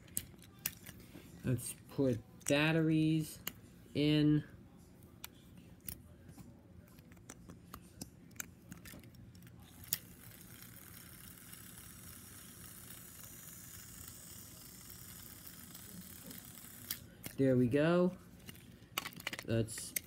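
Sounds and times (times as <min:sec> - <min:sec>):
faint motor whir: 0:04.7 - 0:17.4.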